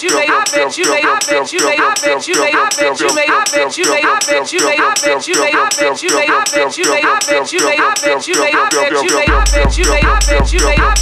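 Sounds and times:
electronic hip-hop music: 0.0s - 11.0s
looped chopped voice sample: 0.0s - 11.0s.

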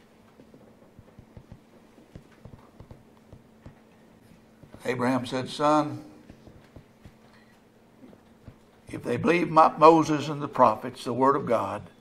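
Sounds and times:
faint steady hum: 0.0s - 12.0s
soft knocks: 1.0s - 3.8s, 6.2s - 7.2s, 8.4s - 8.7s.

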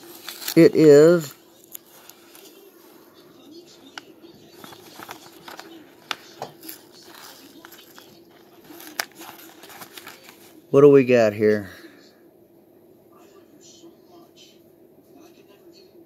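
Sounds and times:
tape peeling crackle: 0.0s - 2.6s, 3.8s - 10.6s.

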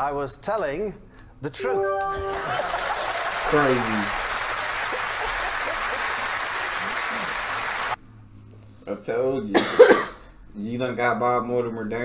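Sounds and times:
studio audience applauding: 1.6s - 8.0s.

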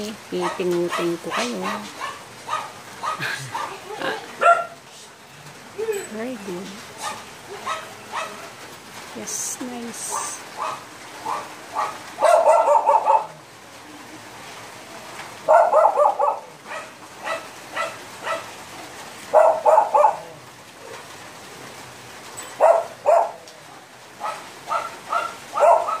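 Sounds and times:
small dog yapping: 0.5s - 3.7s, 4.4s - 4.8s, 7.0s - 8.5s, 10.6s - 13.4s, 15.4s - 18.5s, 19.3s - 20.4s, 22.6s - 23.5s, 24.2s - 26.0s.

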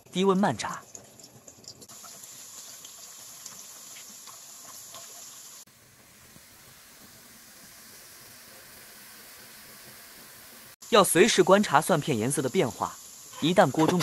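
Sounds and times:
garlic sizzling in oil: 1.2s - 14.0s.

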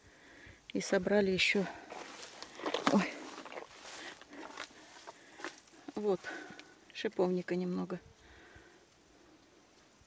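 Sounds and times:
handling and rustling: 1.4s - 6.7s.

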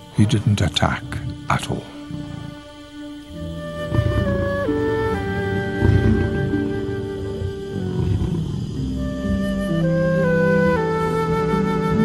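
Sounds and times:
soft background music: 0.0s - 12.0s
lion growling: 0.8s - 12.0s.

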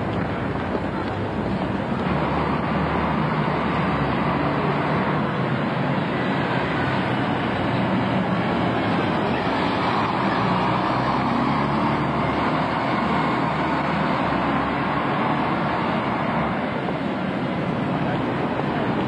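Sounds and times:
diesel bus driving past: 0.0s - 19.0s
street traffic: 0.0s - 19.0s.

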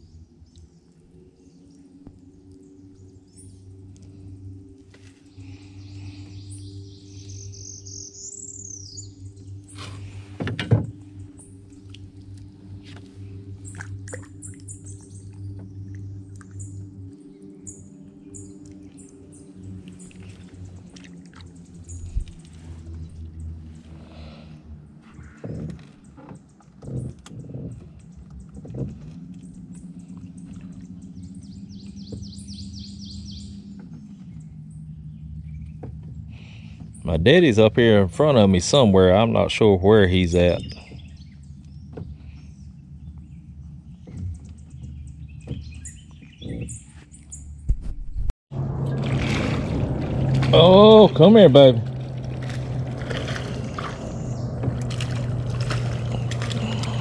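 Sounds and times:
birds singing: 0.0s - 47.7s, 50.6s - 57.0s
steady low hum: 0.0s - 57.0s.

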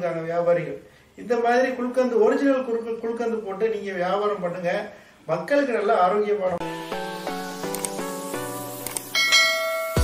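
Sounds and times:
music of sustained notes: 6.6s - 10.0s
small click: 7.7s - 8.0s, 8.8s - 9.1s
bright bell chime: 9.1s - 10.0s.

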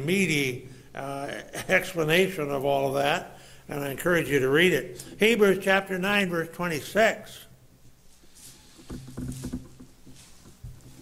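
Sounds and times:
soft knocks on wooden pulpit: 8.8s - 11.0s.

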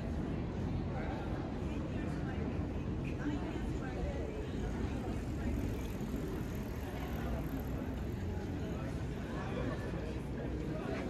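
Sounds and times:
faint voices: 0.0s - 11.0s
low rumble of traffic: 0.0s - 11.0s.

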